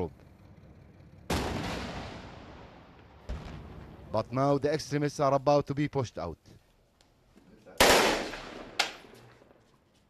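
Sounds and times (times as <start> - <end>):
rifle shots echoing: 7.8 - 9.2.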